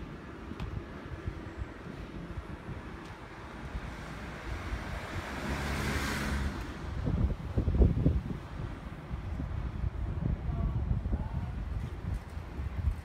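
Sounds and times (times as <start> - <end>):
wind buffeting microphone: 0.0 - 13.0
van passing by: 1.0 - 9.7.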